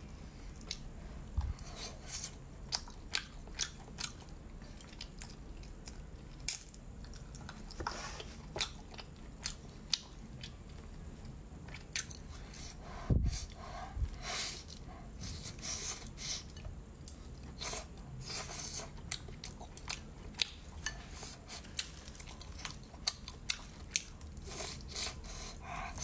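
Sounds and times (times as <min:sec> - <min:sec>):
person chewing food: 0:00.5 - 0:12.7, 0:13.4 - 0:26.0.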